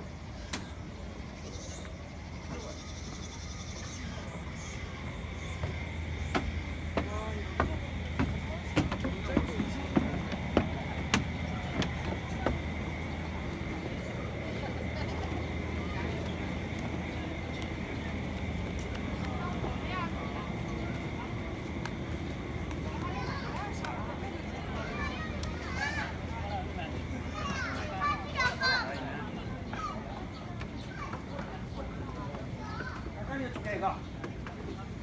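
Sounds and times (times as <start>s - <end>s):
children chattering and calling out: 0.0s - 35.0s
low outdoor hum: 0.0s - 35.0s
footsteps on wooden decking: 5.0s - 14.2s, 29.6s - 35.0s.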